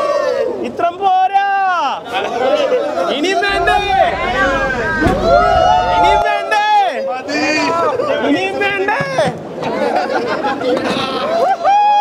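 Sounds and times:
crowd chatter: 3.5 - 6.8.

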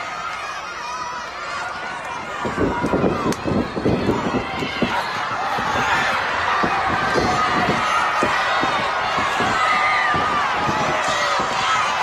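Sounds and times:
crowd chattering and shouting: 0.0 - 12.0.

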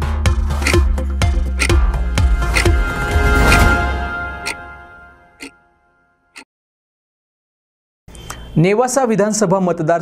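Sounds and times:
clock ticks: 1.6 - 1.8.

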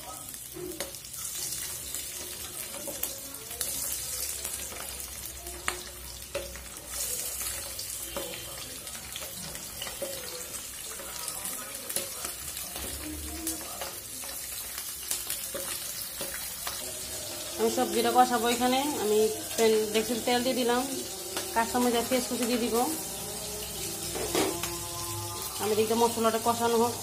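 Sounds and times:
fish sizzling in oil: 0.0 - 27.0
spatula scraping pan: 15.4 - 26.4.

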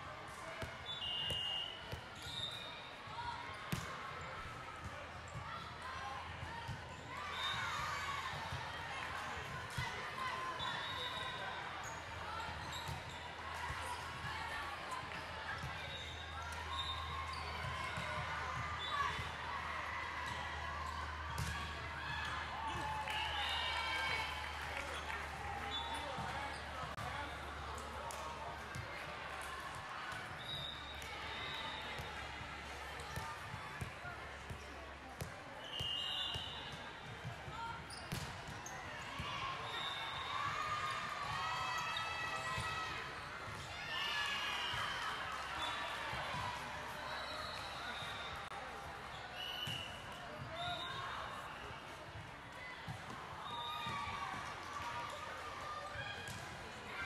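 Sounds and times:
court shoes squeaking: 10.6 - 13.4, 15.6 - 18.1, 37.5 - 39.0.

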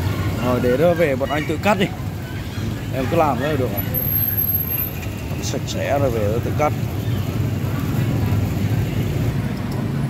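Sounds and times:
busy background noise: 0.0 - 10.0.

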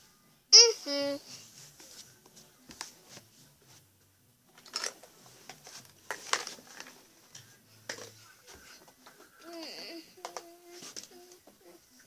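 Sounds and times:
soft rustling: 1.2 - 4.1.

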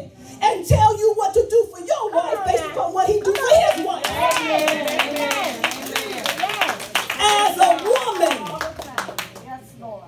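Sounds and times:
hand claps: 3.2 - 9.5.

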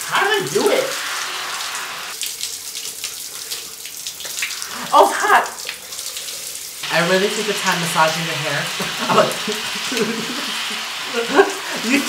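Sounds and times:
shower spray hissing: 0.0 - 2.2, 4.2 - 12.0.

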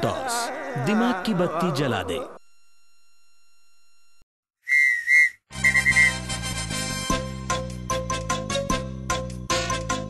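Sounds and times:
quick whistle toots: 4.6 - 6.2
sports whistle blasts: 4.7 - 6.2
upbeat music: 5.6 - 8.5.

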